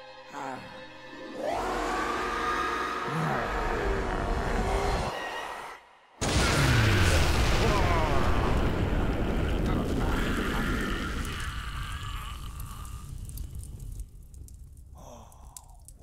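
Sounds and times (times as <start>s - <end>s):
rumbling explosion: 6.2s - 14.9s
breathy gasp: 15.0s - 15.9s.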